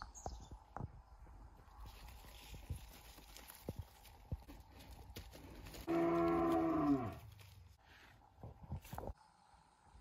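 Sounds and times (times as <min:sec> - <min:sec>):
cow mooing: 0:05.8 - 0:07.2.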